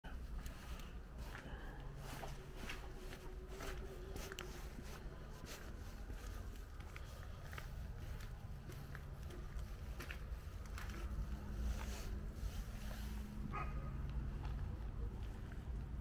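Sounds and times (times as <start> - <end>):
steady low rumble: 0.0 - 16.0
faint footsteps: 0.1 - 16.0.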